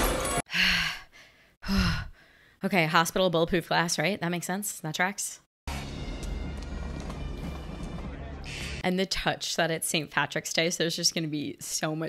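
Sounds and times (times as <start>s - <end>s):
woman sighing: 0.5s - 2.2s
loud film soundtrack: 5.7s - 8.8s.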